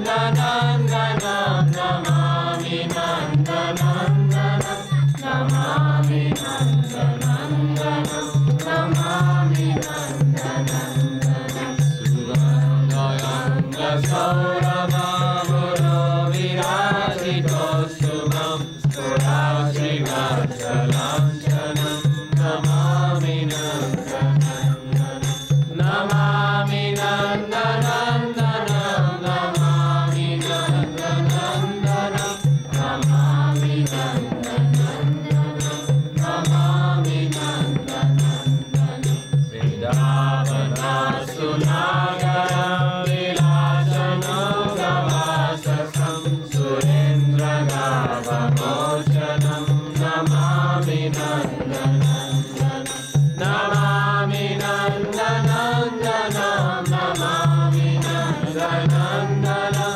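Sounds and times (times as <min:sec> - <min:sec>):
group chanting: 0:00.0 - 0:59.9.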